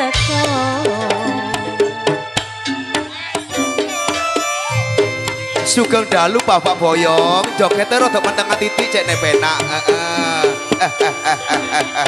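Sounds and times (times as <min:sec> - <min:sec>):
sliding melody line: 0:03.5 - 0:12.0.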